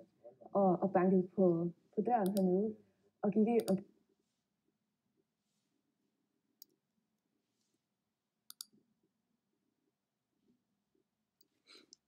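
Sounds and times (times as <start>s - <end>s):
soft clicks: 2.2s - 2.5s, 8.5s - 8.8s.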